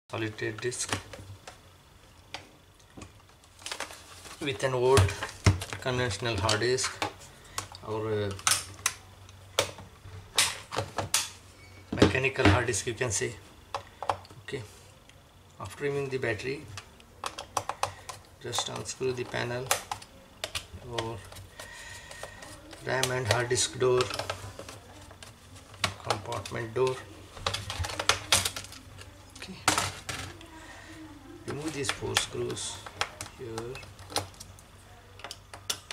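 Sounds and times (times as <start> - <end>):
plastic clips snapping: 7.6 - 9.0.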